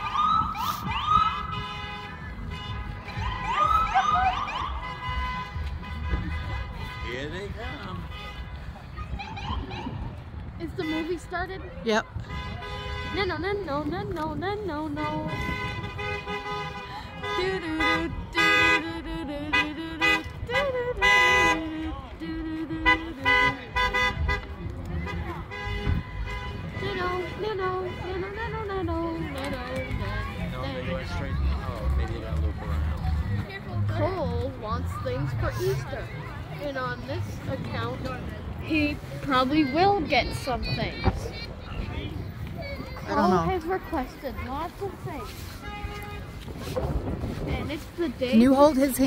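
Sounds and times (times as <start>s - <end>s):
emergency vehicle siren yelping: 0.0s - 1.5s, 3.2s - 4.9s
voices: 0.0s - 49.0s
vehicle horns honking: 0.8s - 8.8s, 10.6s - 13.7s, 14.7s - 32.0s, 43.2s - 46.8s.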